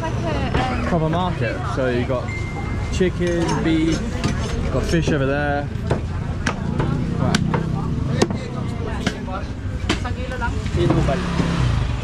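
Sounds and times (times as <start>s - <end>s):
street market chatter: 0.0s - 12.0s.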